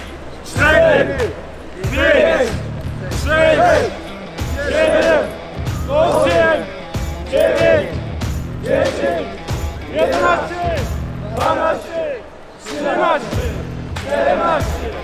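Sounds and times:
background music with low beat: 0.0 - 15.0
group of voices shouting: 0.0 - 15.0.

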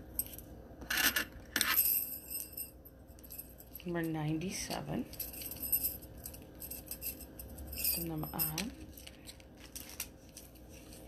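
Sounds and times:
metal bangles clinking: 1.5 - 11.0.

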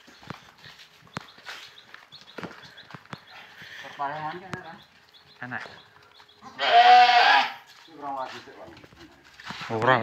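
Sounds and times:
goat bleating: 6.4 - 7.7.

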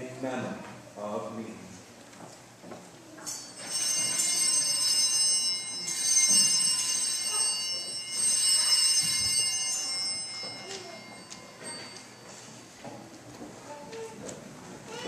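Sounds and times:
small handbells ringing: 3.2 - 12.8.

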